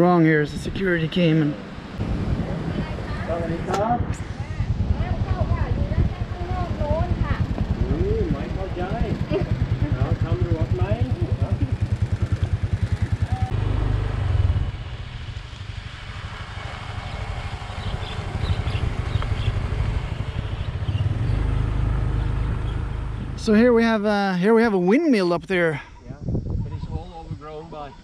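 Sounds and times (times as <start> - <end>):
voices talking: 0.0 - 13.6, 20.8 - 28.0
low rumble of riding: 0.0 - 24.7
motor scooter engine idling: 5.0 - 23.4.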